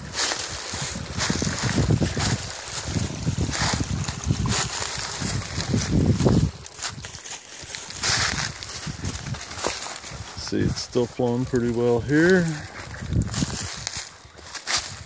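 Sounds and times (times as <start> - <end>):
footsteps crunching dry leaves: 0.0 - 15.0
wind buffeting microphone: 0.0 - 15.0.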